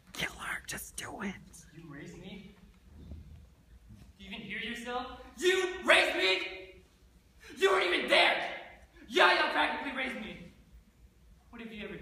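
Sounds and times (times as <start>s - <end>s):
person whispering: 0.0s - 1.8s.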